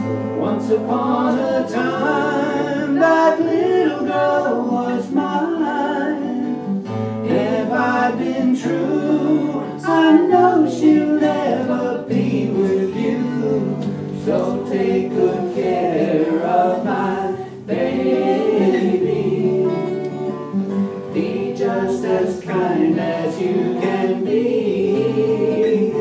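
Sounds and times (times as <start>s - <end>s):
acoustic guitars strumming: 0.0s - 26.0s
person singing: 0.4s - 20.4s, 21.1s - 26.0s.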